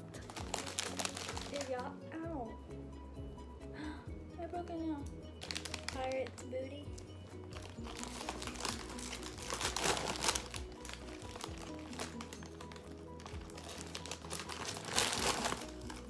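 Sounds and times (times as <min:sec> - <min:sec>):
background music with bass: 0:00.0 - 0:16.0
chip bag crinkling: 0:00.2 - 0:01.8, 0:05.4 - 0:06.4, 0:07.5 - 0:16.0.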